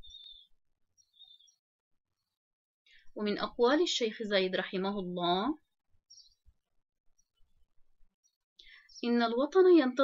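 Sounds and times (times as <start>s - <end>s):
faint high-pitched chirps: 0.0s - 3.2s, 5.6s - 9.3s.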